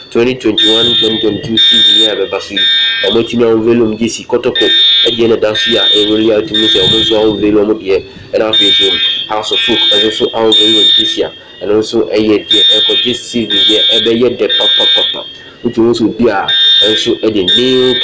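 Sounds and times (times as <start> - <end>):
high-pitched electronic beeps: 0.0 - 18.0
person talking: 0.1 - 18.0.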